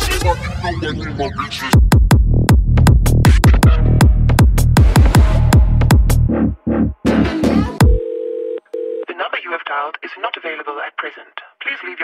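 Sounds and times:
telephone-filtered voice: 0.0s - 1.7s, 9.0s - 12.0s.

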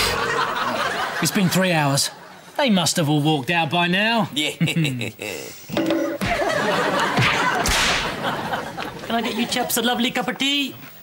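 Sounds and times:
audience laughter: 0.0s - 2.4s, 6.1s - 9.8s
sharp swish: 7.2s - 8.2s.

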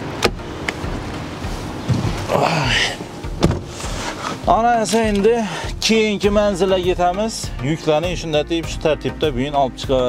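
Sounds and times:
car door latch click: 0.0s - 0.8s, 3.4s - 3.7s
engine hum: 0.0s - 7.7s
car door shutting thud: 0.2s - 0.8s, 1.8s - 2.3s, 3.4s - 3.8s.

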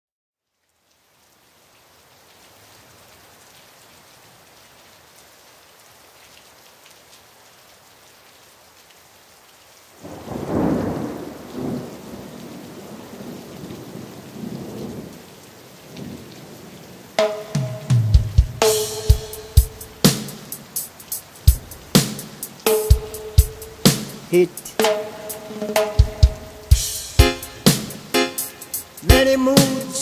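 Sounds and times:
steady rain: 0.4s - 30.0s
thunder clap rumbling: 10.0s - 15.1s.

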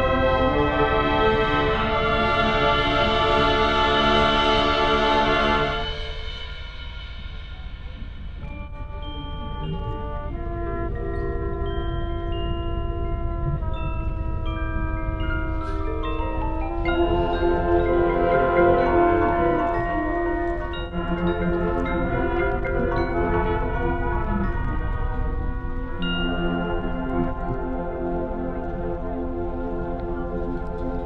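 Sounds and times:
low steady rumble: 0.0s - 31.0s
mallet percussion playing: 5.8s - 28.1s.

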